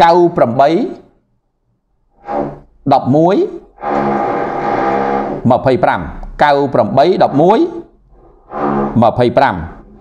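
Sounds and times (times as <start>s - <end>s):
man speaking into a microphone: 0.0s - 1.1s, 5.4s - 7.9s, 8.9s - 9.8s.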